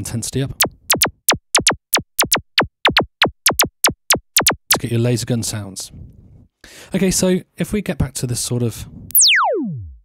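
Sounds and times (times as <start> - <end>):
synthesizer laser zaps: 0.6 - 4.9, 9.1 - 10.0.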